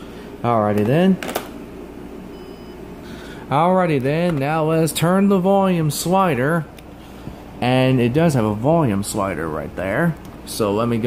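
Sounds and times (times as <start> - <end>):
cordless phone beep: 2.3 - 2.8.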